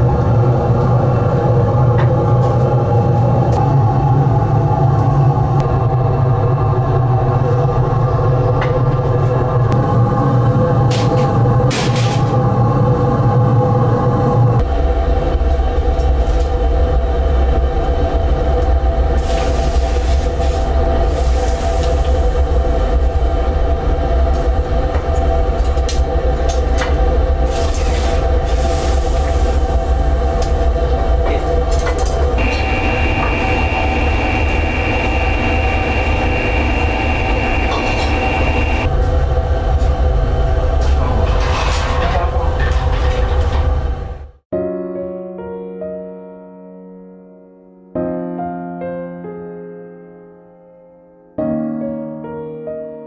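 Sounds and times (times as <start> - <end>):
kiln blower deep rumble: 0.0 - 44.4
high steady whine: 32.1 - 41.1.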